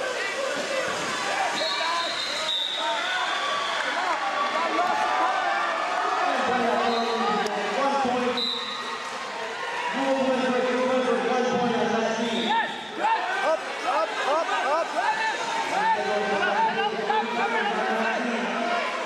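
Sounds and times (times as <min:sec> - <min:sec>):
indistinct voices and shouts: 0:04.0 - 0:19.0.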